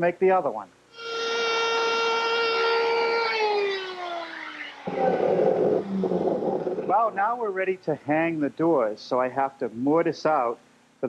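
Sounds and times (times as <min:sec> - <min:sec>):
router motor whining: 0:00.9 - 0:07.2
rough noisy sound: 0:00.9 - 0:07.5.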